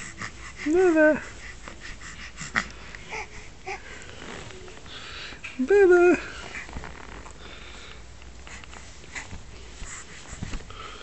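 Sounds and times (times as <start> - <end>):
faint rustles: 0.0 - 11.0.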